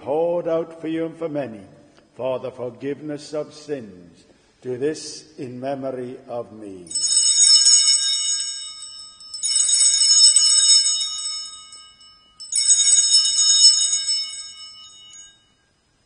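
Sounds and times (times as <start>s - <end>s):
altar bells ringing: 6.9s - 16.0s.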